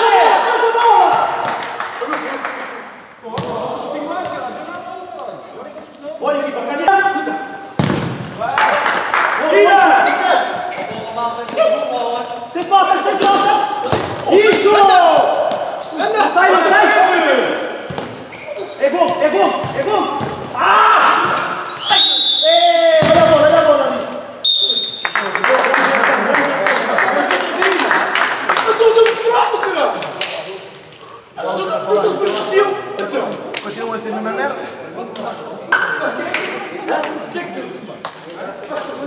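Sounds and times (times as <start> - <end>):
players shouting: 11.6 - 17.8, 18.6 - 25.1.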